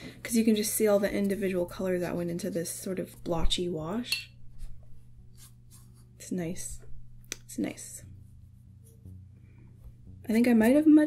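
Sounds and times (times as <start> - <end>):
low steady hum: 0.0 - 11.0
paintbrush scratching on paper: 4.6 - 6.5, 7.6 - 9.2.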